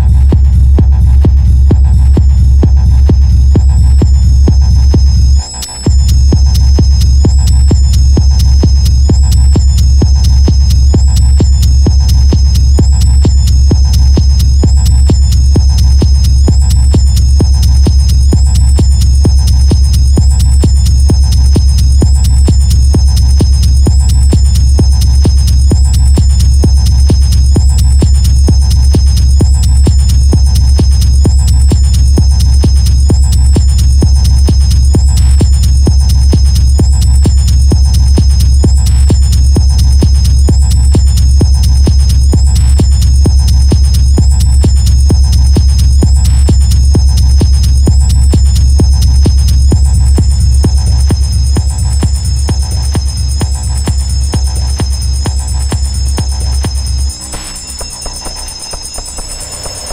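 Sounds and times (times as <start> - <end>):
hard techno music: 0.0 - 59.9
heavy bass: 0.0 - 59.9
kick drum: 0.0 - 59.9
wavering high synth tone: 56.2 - 59.9.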